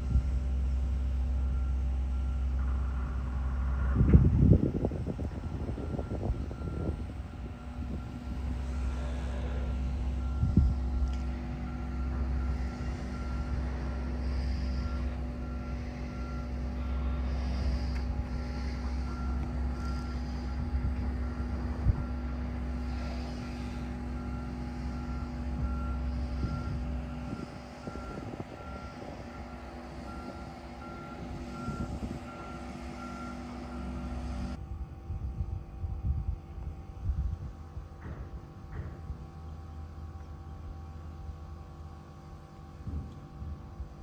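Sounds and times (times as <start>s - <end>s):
reversing alarm beeping: 0.0s - 34.6s
low engine rumble: 0.0s - 44.0s.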